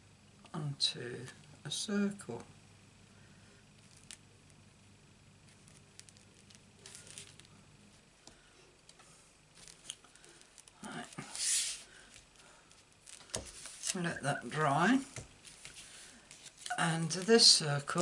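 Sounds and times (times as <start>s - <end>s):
cardstock rustling: 5.4s - 7.5s, 9.6s - 14.1s.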